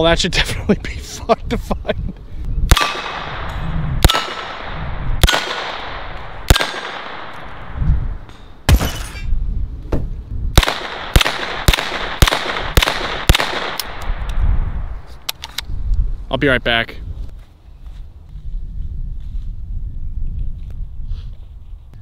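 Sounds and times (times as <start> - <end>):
gunshots hitting steel targets: 2.7 - 7.6, 8.3 - 9.3, 10.6 - 14.0.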